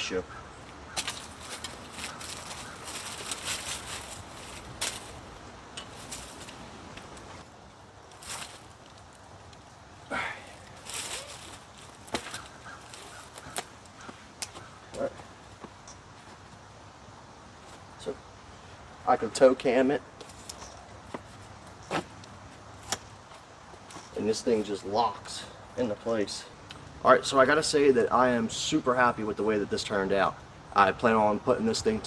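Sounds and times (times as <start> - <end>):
rustling of clothing and rope: 0.6 - 16.7, 17.4 - 18.2, 20.1 - 25.4.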